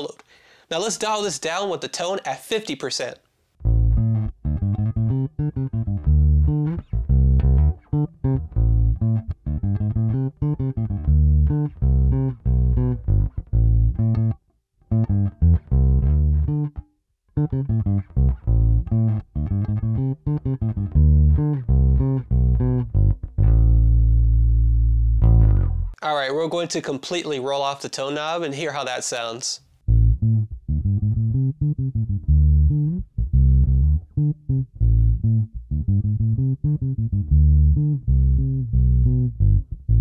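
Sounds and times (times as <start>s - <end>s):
bass guitar plucked notes: 3.6s - 26.0s, 29.8s - 40.0s.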